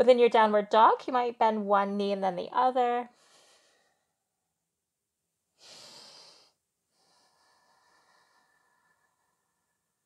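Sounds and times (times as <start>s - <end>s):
woman breathing: 3.1s - 4.3s, 5.5s - 10.0s.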